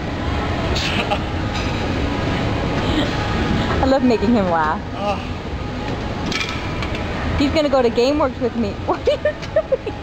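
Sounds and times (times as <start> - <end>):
low rumbling gym background noise: 0.0 - 10.0.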